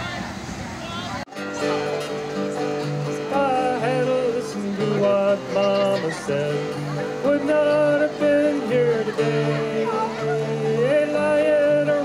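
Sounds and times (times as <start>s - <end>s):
acoustic guitar: 0.9s - 12.0s
banjo: 1.3s - 12.0s
man singing: 3.0s - 12.0s.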